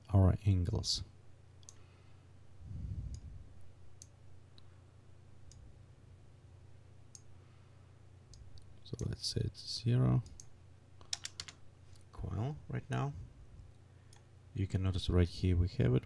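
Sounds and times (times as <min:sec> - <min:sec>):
steady low hum: 0:00.0 - 0:16.0
computer mouse clicking: 0:10.2 - 0:11.6.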